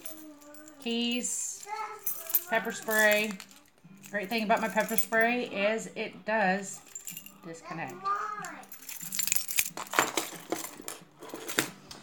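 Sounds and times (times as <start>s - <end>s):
keys jangling: 0.0s - 5.4s, 6.6s - 11.7s.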